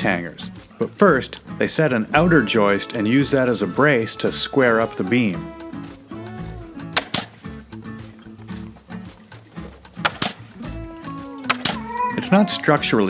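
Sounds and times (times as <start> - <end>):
background music: 0.0 - 13.0
nail gun firing: 10.0 - 10.4.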